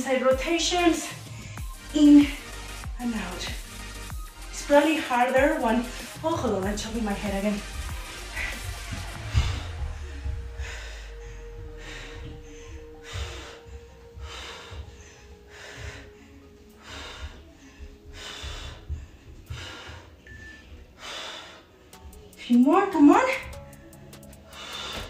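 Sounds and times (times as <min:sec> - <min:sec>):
woman breathing hard: 0:01.1 - 0:02.9, 0:07.6 - 0:22.1, 0:24.4 - 0:25.0.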